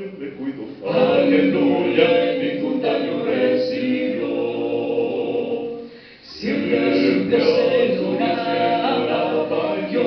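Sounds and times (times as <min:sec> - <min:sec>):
male vocal quartet singing: 0:00.0 - 0:10.0.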